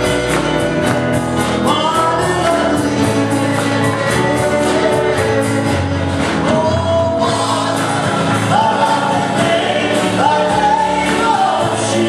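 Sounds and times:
gospel worship music: 0.0 - 12.0.

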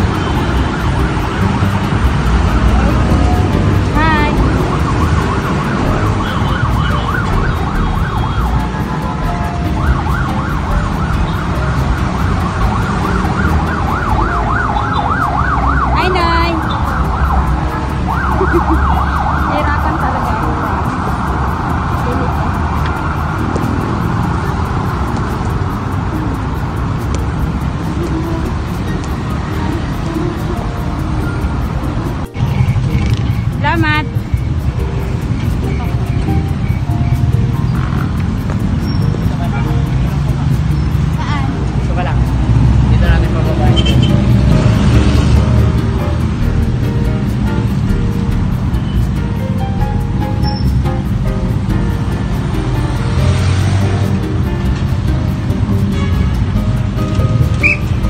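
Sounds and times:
vehicle siren yelping and wailing: 0.0 - 36.6
street traffic noise: 0.0 - 58.0.

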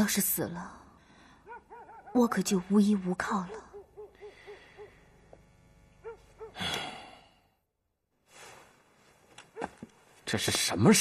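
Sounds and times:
long heavy sigh: 6.6 - 7.5.

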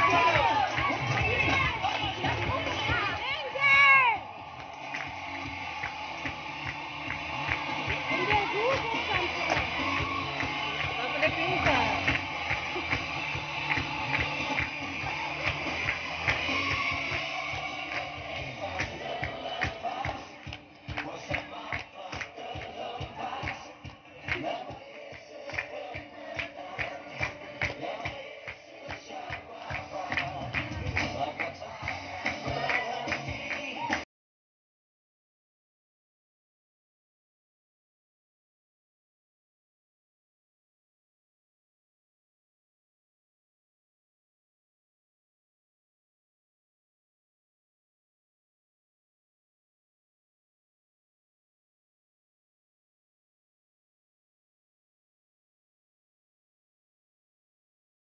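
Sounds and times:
music with steady beat: 0.0 - 34.0.

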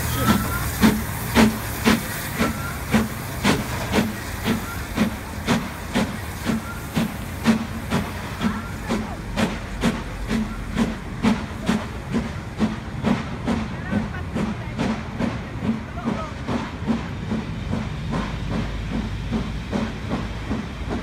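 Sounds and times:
steam locomotive chuffing: 0.0 - 21.0.

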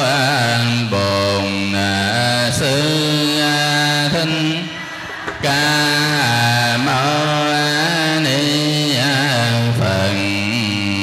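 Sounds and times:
monk chanting into microphone: 0.0 - 4.8, 5.4 - 11.0.

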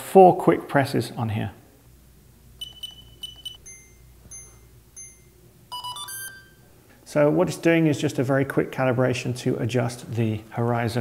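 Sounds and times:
electronic beeps: 2.6 - 6.6.

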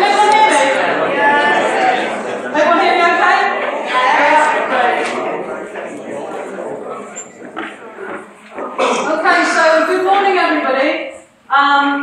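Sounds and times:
indistinct chatter of people: 0.0 - 12.0
person speaking loudly: 8.8 - 11.0.

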